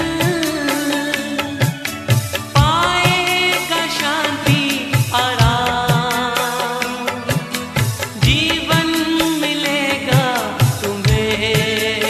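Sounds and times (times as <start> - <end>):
devotional song with wavering melody: 0.0 - 12.0
drum beat: 4.5 - 9.4, 10.1 - 12.0.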